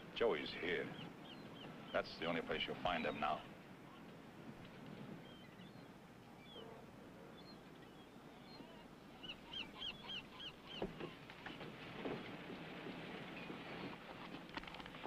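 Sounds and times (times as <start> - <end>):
faint outdoor ambience: 0.0 - 15.0.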